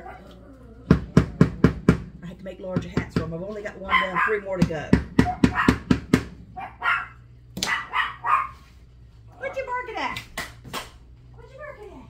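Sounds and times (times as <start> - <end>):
small dogs barking: 0.0 - 1.2, 3.8 - 4.6, 5.2 - 9.8.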